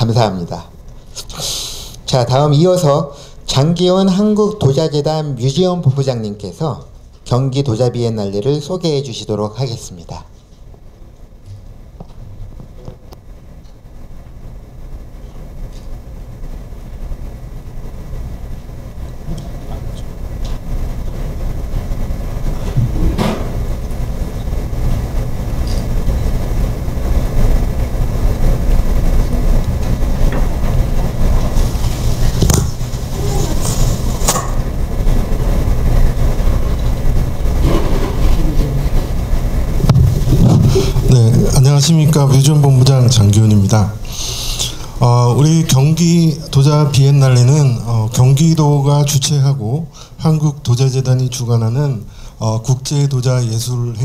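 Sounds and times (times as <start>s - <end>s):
low rumble on microphone: 11.3s - 49.1s.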